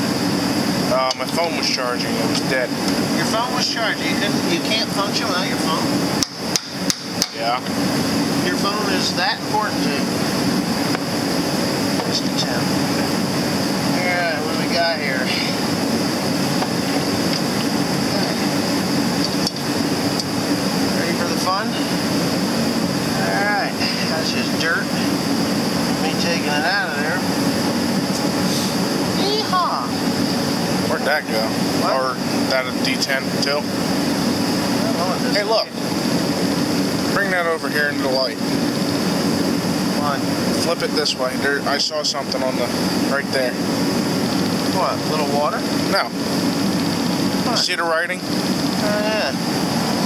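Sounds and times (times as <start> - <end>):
heater humming with whine: 0.0 - 50.0.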